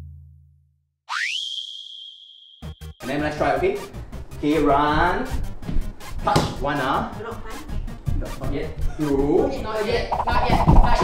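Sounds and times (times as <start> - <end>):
rising tone into high whistle: 1.1 - 3.0.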